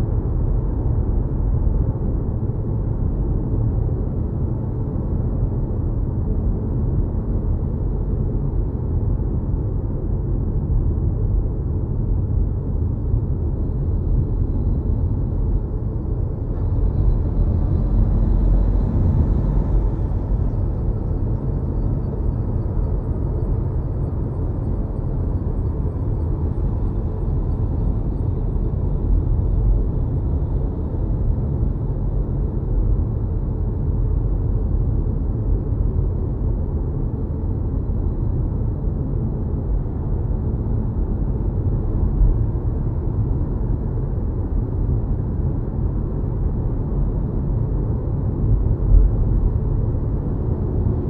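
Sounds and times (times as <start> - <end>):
road and tyre rumble: 0.0 - 51.0.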